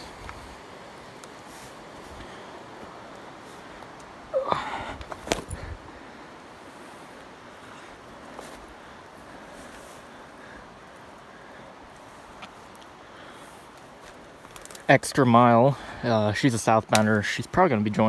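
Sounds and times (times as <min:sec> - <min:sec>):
rustling through brush: 0:00.0 - 0:15.0
person grunting: 0:04.3 - 0:05.0
sharp wood snap: 0:05.0 - 0:05.6.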